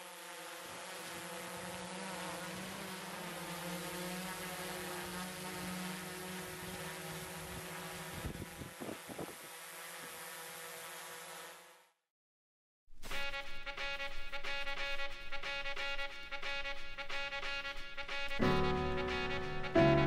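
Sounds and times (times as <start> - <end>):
drone propellers buzzing: 0.0 - 11.8.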